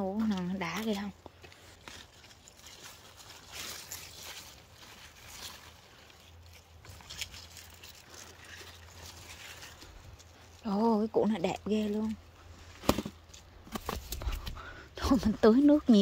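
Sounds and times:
leaves and soil rustling: 0:00.0 - 0:16.0
low steady background hum: 0:00.0 - 0:16.0.

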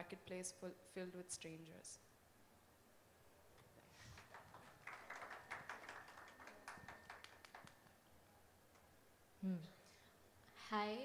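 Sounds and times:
soft applause: 0:03.7 - 0:08.4.

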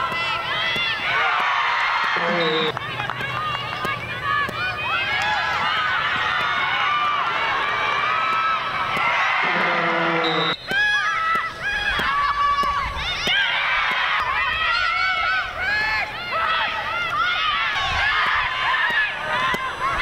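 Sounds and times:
crowd noise: 0:00.0 - 0:20.0
women shouting and calling: 0:00.0 - 0:20.0.

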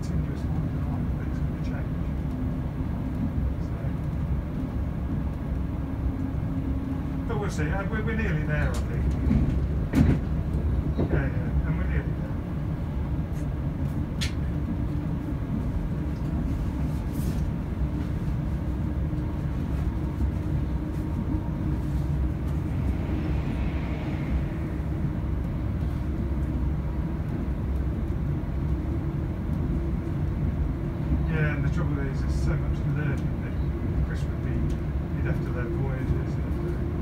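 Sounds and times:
diesel engine rumble: 0:00.0 - 0:37.0
train wheels on track: 0:00.0 - 0:37.0.

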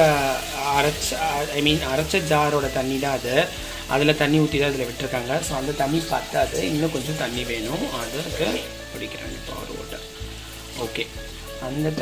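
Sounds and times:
person talking: 0:00.0 - 0:10.1, 0:10.7 - 0:12.0
background music: 0:00.0 - 0:12.0
food sizzling in a pan: 0:00.0 - 0:12.0.

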